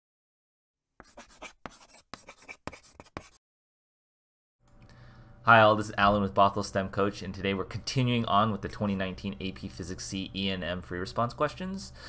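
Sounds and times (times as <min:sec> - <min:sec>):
chalk scratching on a chalkboard: 0:01.0 - 0:03.4.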